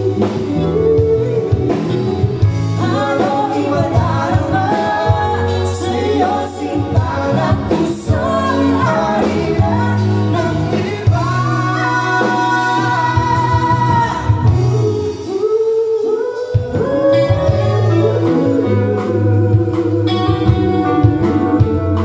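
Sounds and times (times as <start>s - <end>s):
bass: 0.0s - 22.0s
drums: 0.0s - 22.0s
electric guitar: 0.0s - 22.0s
male and female vocals: 0.0s - 22.0s.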